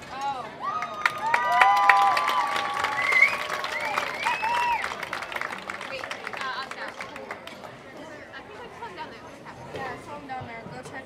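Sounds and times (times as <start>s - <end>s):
crowd applauding: 0.1s - 7.8s
voices whooping and yelling: 0.6s - 4.9s.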